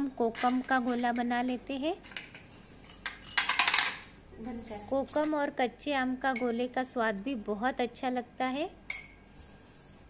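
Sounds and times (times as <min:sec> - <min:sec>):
person speaking: 0:04.4 - 0:08.6.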